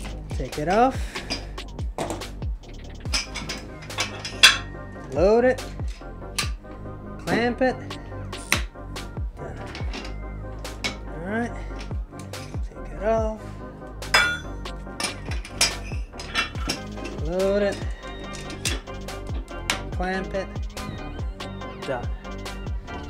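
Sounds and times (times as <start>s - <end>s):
background music: 0.0s - 23.0s
metal weight plates clinking: 3.1s - 5.1s, 14.1s - 19.0s.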